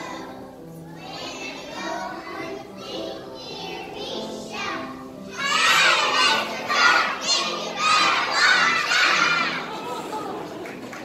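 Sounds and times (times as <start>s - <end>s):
young children shouting: 5.3s - 10.7s.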